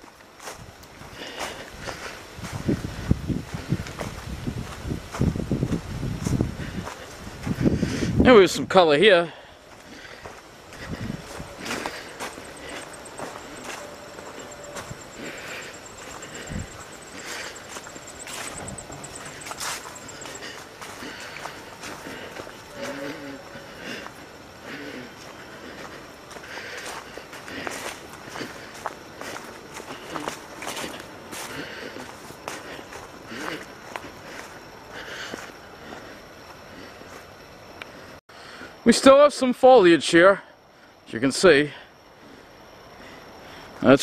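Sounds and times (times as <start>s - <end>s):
footsteps on sand and dry leaves: 0.0s - 8.1s, 9.6s - 35.6s.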